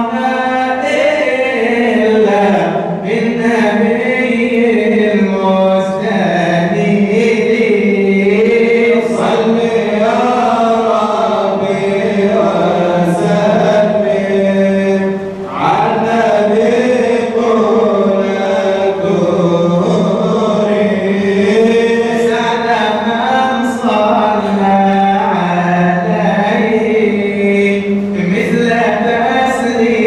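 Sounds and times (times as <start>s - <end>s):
men chanting into a microphone: 0.0s - 30.0s.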